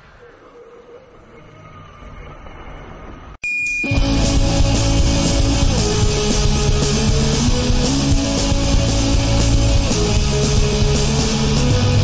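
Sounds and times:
soundtrack ambience: 0.0s - 12.0s
high-pitched tone: 3.4s - 10.8s.

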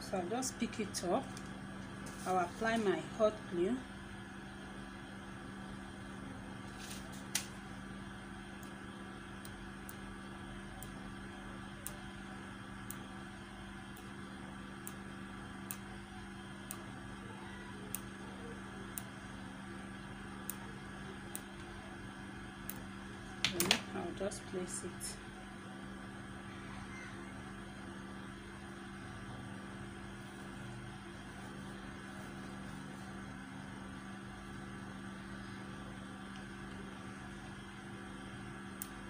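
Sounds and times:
low buzzy mechanical hum: 0.0s - 39.0s.

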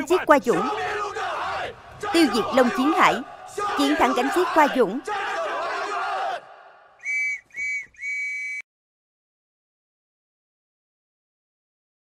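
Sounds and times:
whistle blasts: 7.0s - 8.6s.

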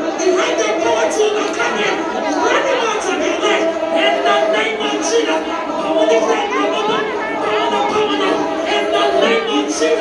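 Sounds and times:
women praying aloud: 0.0s - 10.0s.

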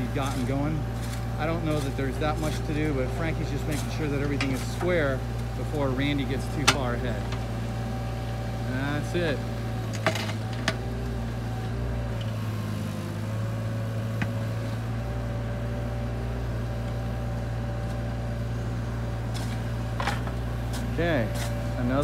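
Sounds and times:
excavator diesel engine running: 0.0s - 22.0s.

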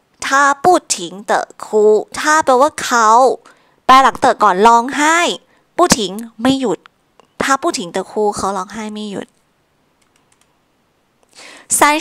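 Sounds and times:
woman's voice: 0.2s - 9.3s, 11.4s - 12.0s
faint computer clicks: 10.0s - 10.6s.

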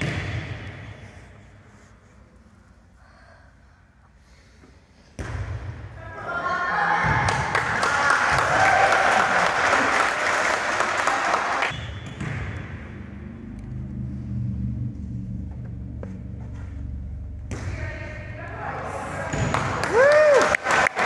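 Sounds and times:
people clapping: 7.2s - 11.7s, 19.5s - 21.0s
girls shouting and cheering: 19.8s - 20.6s.

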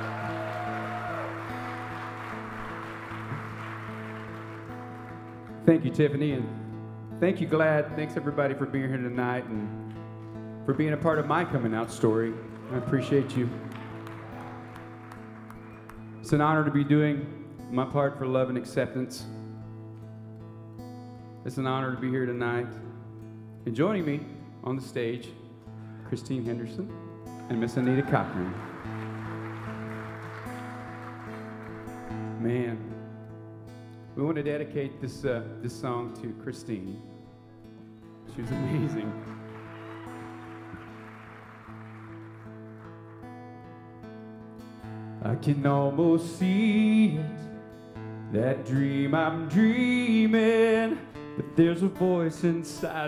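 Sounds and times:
acoustic guitar chords: 0.0s - 53.0s.

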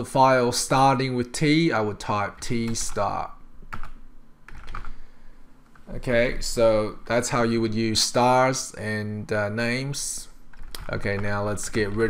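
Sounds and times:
computer keyboard typing: 3.7s - 5.0s, 10.5s - 12.0s.

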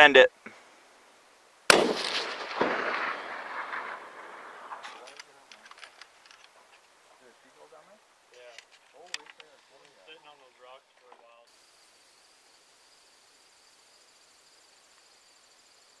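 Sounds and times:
high-pitched insect buzz: 11.5s - 16.0s.

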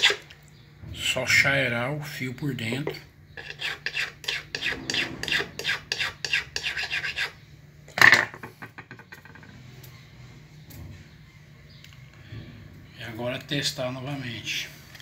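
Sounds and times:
file rasping on metal edge: 3.4s - 7.4s.

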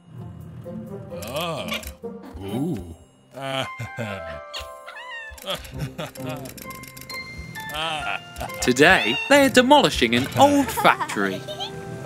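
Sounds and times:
light background music: 0.0s - 12.0s
cartoon kitten meowing: 4.6s - 5.6s, 8.7s - 9.6s.

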